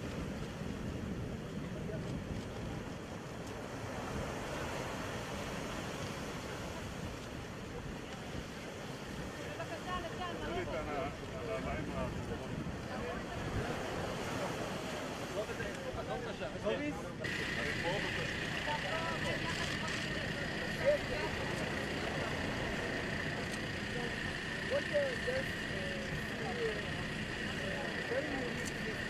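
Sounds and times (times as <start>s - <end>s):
surf: 0.0s - 29.0s
wind: 0.0s - 29.0s
crowd of voices chattering: 6.3s - 29.0s
high-pitched machine whine: 17.2s - 29.0s.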